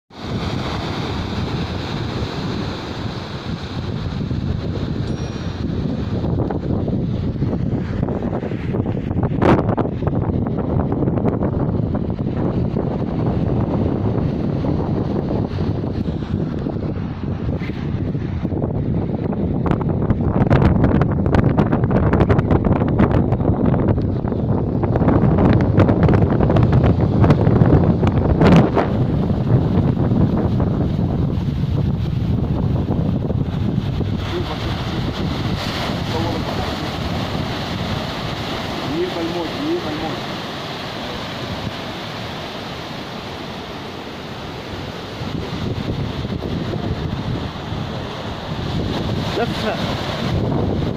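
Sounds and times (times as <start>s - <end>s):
waves breaking on rocky shore: 0.1s - 19.8s, 23.6s - 50.9s
wind buffeting microphone: 0.1s - 50.9s.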